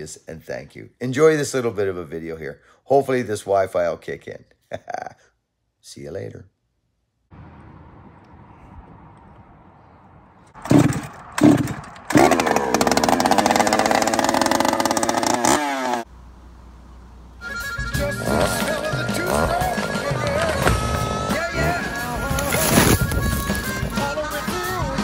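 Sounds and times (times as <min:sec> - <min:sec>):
chainsaw revving: 0:10.6 - 0:16.1, 0:18.2 - 0:22.8
music: 0:17.4 - 0:25.0.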